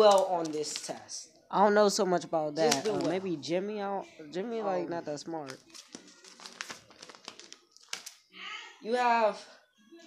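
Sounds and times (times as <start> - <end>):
paper rustling and crinkling: 0.0 - 1.2, 2.6 - 3.2, 5.4 - 8.2.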